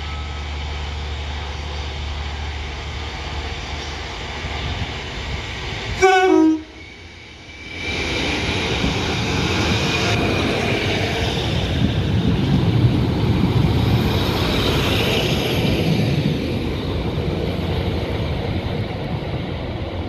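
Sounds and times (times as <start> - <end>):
diesel train engine rumbling: 0.0 - 20.0
two-note train horn: 6.0 - 6.8.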